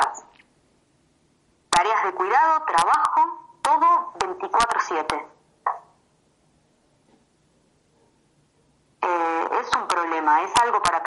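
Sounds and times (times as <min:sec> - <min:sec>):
woman speaking: 0:00.0 - 0:00.4, 0:01.7 - 0:05.8, 0:09.0 - 0:11.0.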